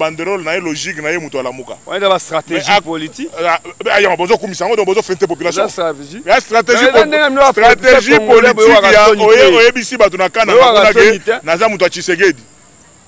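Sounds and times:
man talking: 0.0s - 12.4s
faint high-pitched whine: 0.0s - 13.0s.

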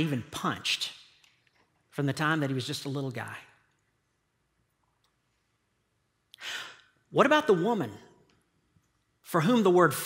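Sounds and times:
quick in-breath: 6.4s - 6.9s.

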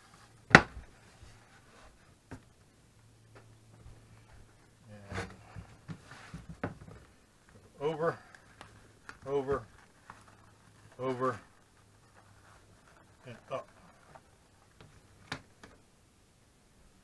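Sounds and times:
leather rustling: 8.2s - 15.5s
person speaking: 9.1s - 9.8s, 10.9s - 11.5s, 13.0s - 14.0s.

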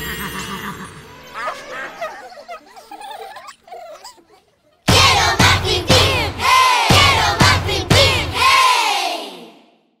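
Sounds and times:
sharp drum hits: 4.9s - 8.5s.

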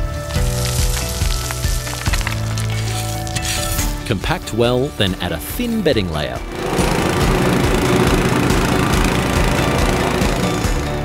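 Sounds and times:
gravel pouring: 0.0s - 6.4s
background music: 0.0s - 11.0s.

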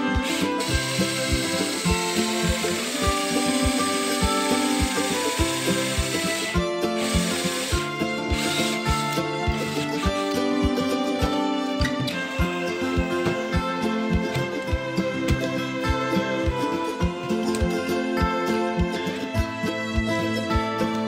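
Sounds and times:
cordless drill boring into wood: 0.0s - 10.4s
background music with beat: 0.0s - 21.0s.

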